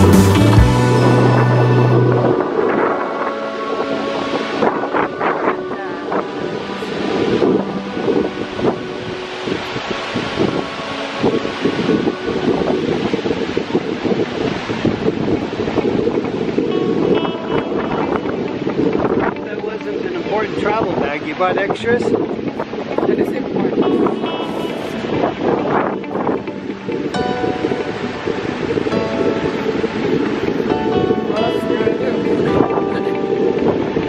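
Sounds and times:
background music: 0.0s - 34.0s
waterfall rushing: 0.0s - 34.0s
wind gusting on microphone: 0.0s - 34.0s.

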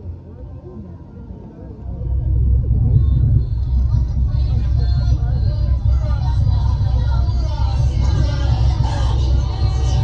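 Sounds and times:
deep low rumble: 0.0s - 10.0s.

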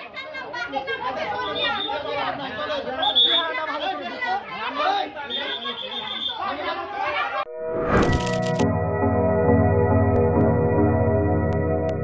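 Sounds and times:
crowd of men talking and shouting: 0.0s - 7.5s
police whistle blowing: 3.0s - 3.5s, 5.3s - 6.4s
rising whoosh: 7.6s - 8.6s.

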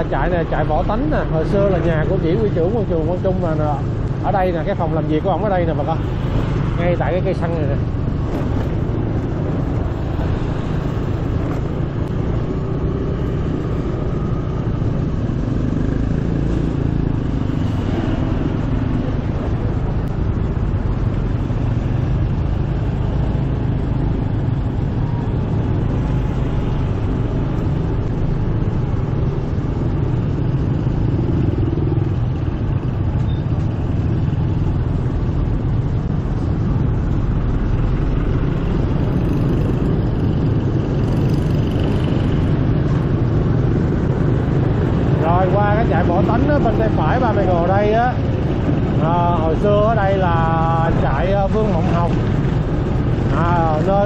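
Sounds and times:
motorbikes in traffic: 0.0s - 54.0s.

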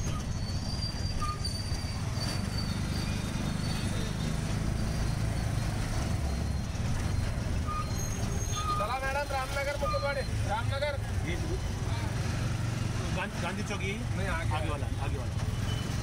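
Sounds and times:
auto-rickshaw engine: 0.0s - 16.0s
motorbikes and cars: 0.0s - 16.0s.

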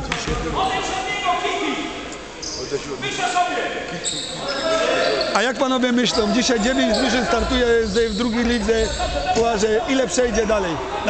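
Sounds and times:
voices in background: 0.0s - 11.0s.

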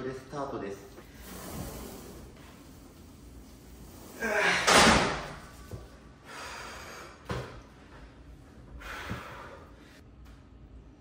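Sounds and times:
man grunting and exhaling: 4.2s - 5.0s
heavy breathing: 6.2s - 7.2s.

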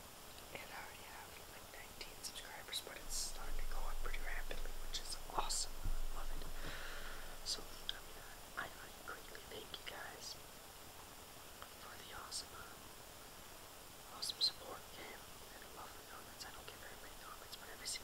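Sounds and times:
person whispering: 0.5s - 6.8s, 7.4s - 10.4s, 11.8s - 12.8s, 14.1s - 18.0s.

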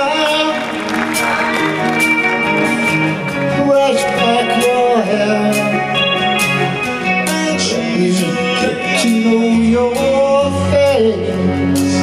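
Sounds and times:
electric guitar: 0.0s - 12.0s.

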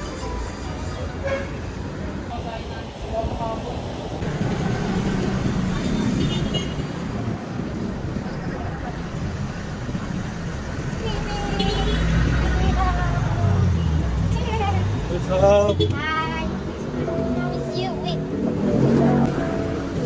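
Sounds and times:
vehicles passing on road: 0.0s - 20.0s.

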